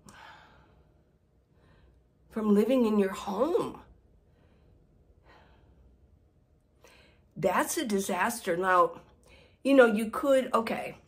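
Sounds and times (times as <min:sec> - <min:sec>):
woman breathing faintly: 0:04.1 - 0:07.3.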